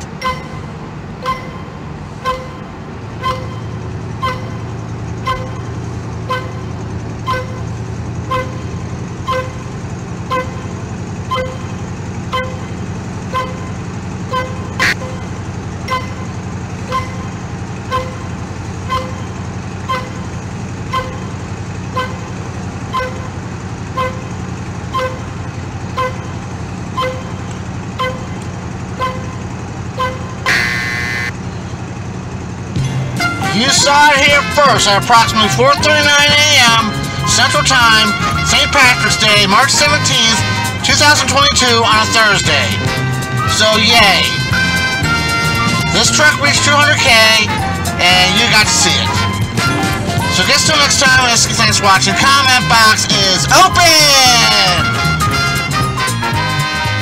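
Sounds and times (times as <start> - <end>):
warning chime dinging: 0.0 - 31.3
engine and road drone: 0.0 - 57.0.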